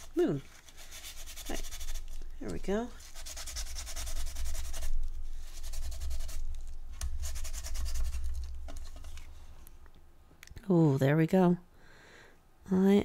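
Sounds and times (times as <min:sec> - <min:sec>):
paper towel scrubbing board: 0:03.0 - 0:09.1.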